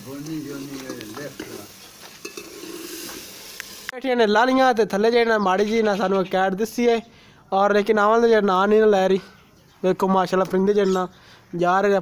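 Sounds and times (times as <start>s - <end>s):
food sizzling in pot: 0.0s - 4.0s
metal spoon scraping steel pot: 2.2s - 3.2s.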